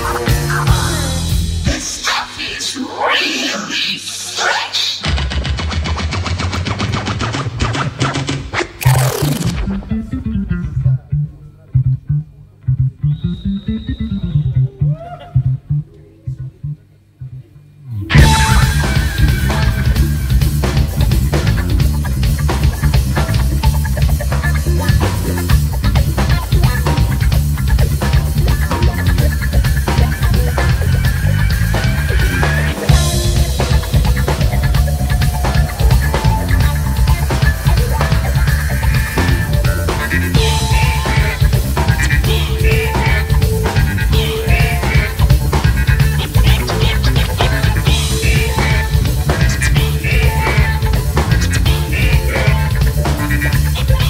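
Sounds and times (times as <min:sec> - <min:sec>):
sliding bass line: 0:00.0 - 0:01.9, 0:08.8 - 0:54.0
live band groove: 0:00.0 - 0:02.4, 0:05.0 - 0:14.3, 0:18.1 - 0:54.0
turntable falling sweep: 0:05.1 - 0:11.1, 0:17.8 - 0:20.3.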